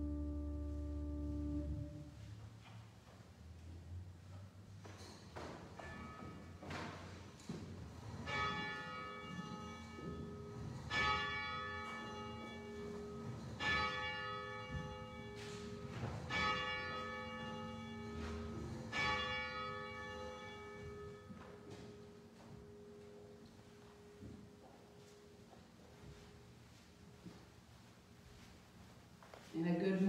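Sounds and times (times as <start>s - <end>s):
bell tolling: 8.2s - 21.3s.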